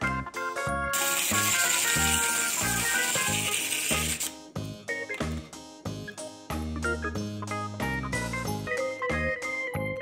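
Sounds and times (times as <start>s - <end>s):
background music with beat: 0.0s - 10.0s
wind-up toy rattle: 0.9s - 4.3s.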